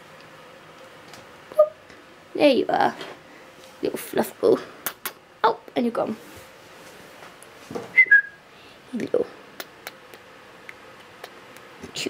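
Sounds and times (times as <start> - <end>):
person whistling two-note call: 8.0 - 8.4.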